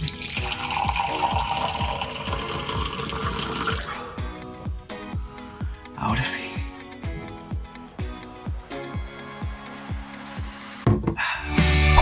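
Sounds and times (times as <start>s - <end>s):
beer pouring into a glass: 0.0s - 4.0s
music with a steady beat: 4.2s - 12.0s.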